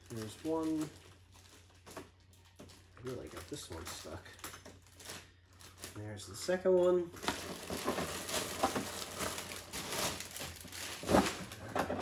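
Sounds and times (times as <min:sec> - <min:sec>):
plastic wrap rustling: 0:00.0 - 0:12.0.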